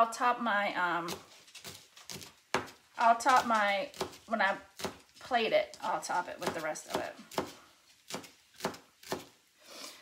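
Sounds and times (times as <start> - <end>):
knife chopping on cutting mat: 1.0 - 9.4.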